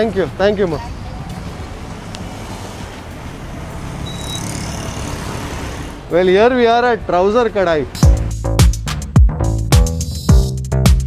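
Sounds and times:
motor vehicles running: 0:00.0 - 0:08.1
motorcycle close by: 0:01.3 - 0:06.1.

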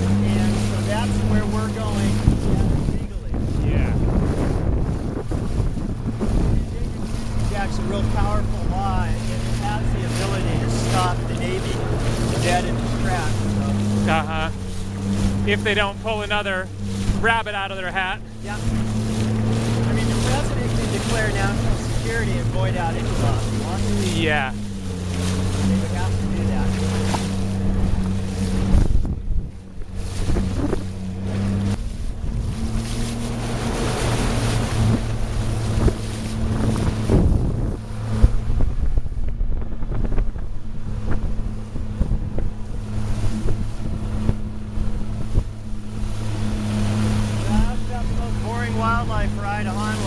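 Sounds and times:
motorboat engine running: 0:00.0 - 0:50.0
water wash: 0:00.0 - 0:50.0
wind: 0:00.0 - 0:50.0.

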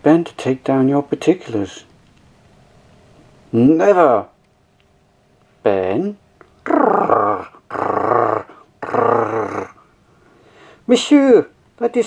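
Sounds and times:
dog growling: 0:06.6 - 0:10.0.

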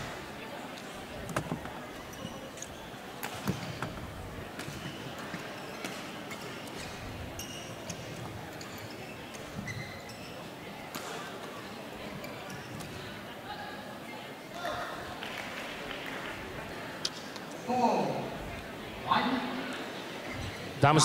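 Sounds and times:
crowd murmur: 0:00.0 - 0:21.0
short high squeaks: 0:08.6 - 0:10.4.

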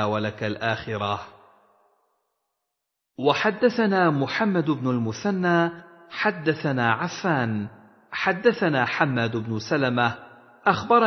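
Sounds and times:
man reading aloud: 0:00.0 - 0:01.3, 0:03.2 - 0:11.0.

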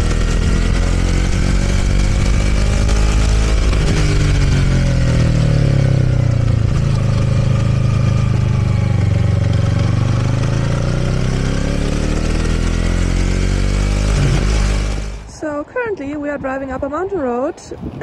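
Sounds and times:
wind noise: 0:00.0 - 0:09.9, 0:13.5 - 0:18.0
motorcycle engine: 0:00.0 - 0:17.0.

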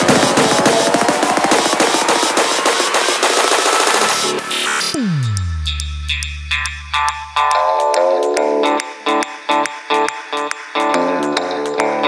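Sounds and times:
rapid percussive electronic hits: 0:00.0 - 0:07.5.

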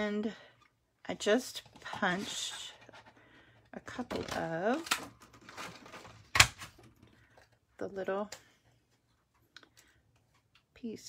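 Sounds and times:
paper and tools rustling: 0:01.6 - 0:07.4.

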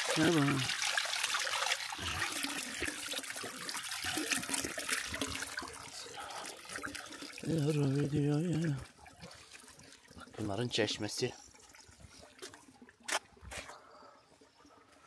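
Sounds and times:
water pouring into stone trough: 0:00.0 - 0:13.5.

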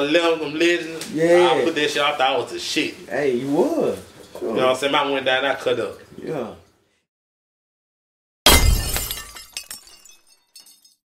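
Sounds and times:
glass shards tinkling: 0:08.5 - 0:11.0
glass shattering: 0:08.5 - 0:11.0.

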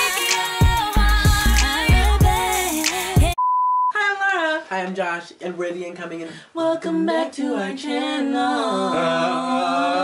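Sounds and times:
song with a beat: 0:00.0 - 0:03.4
high electronic beep: 0:03.4 - 0:04.0
voices singing: 0:06.6 - 0:10.0.

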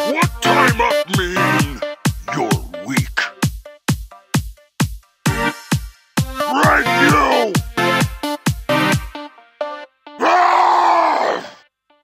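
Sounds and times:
electronic music: 0:00.0 - 0:04.4, 0:05.3 - 0:09.8
groan-like vocal sound: 0:10.2 - 0:11.6.

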